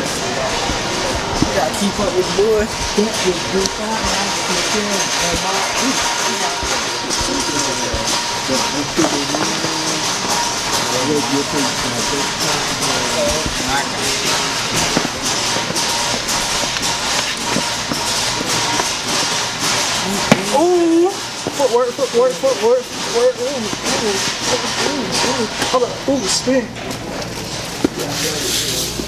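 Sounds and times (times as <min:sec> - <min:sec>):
indistinct voices talking: 0:00.0 - 0:29.0.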